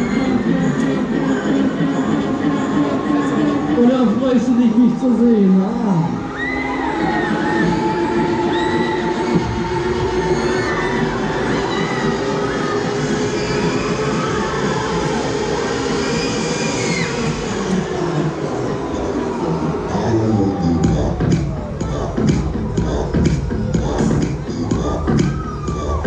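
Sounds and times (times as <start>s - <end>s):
loud fairground ride music: 0.0s - 26.0s.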